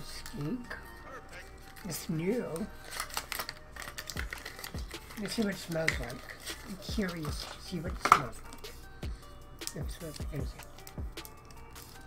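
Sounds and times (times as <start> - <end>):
plastic bottle clicks and taps: 8.0 - 8.3.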